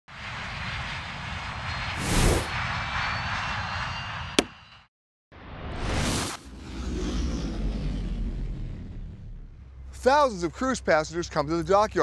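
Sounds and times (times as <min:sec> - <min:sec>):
whoosh: 0:00.1 - 0:03.7
airplane engine rushing: 0:00.1 - 0:04.8, 0:06.5 - 0:12.0
rising whoosh: 0:00.8 - 0:03.7.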